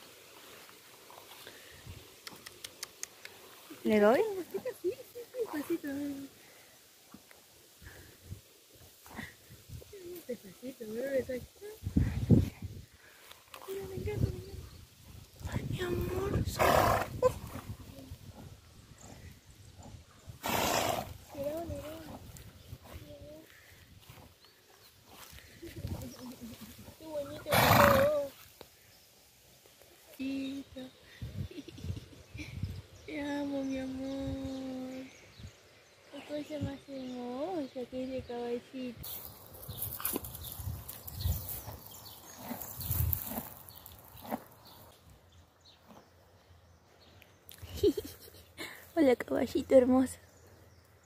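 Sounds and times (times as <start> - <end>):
horse snorting: 15.9 - 22.4, 27.3 - 28.4
horse chewing grass: 39.4 - 45.0.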